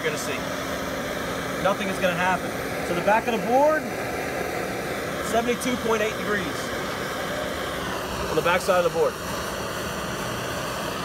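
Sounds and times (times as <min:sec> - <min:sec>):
blowtorch hissing: 0:00.0 - 0:11.0.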